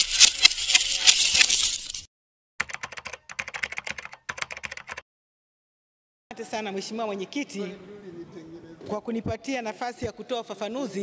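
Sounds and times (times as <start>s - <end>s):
keyboard typing: 2.6s - 5.0s.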